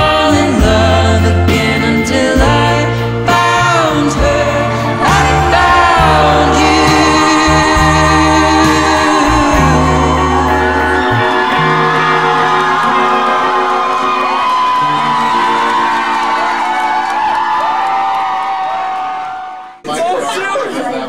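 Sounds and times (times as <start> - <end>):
live band with electric guitar: 0.0 - 18.4
crowd whooping and cheering: 4.3 - 20.4.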